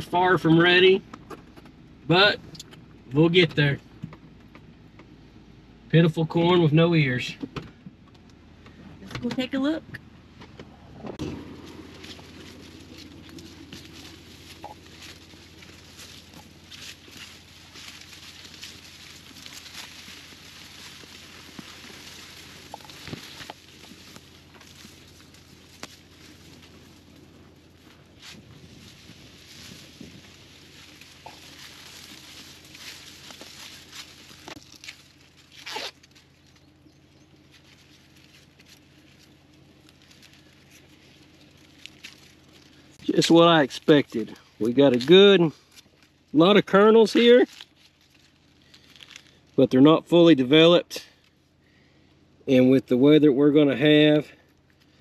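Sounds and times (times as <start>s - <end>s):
footsteps: 10.3s - 36.7s
dry corn leaves rustling: 11.2s - 50.3s, 54.2s - 55.0s.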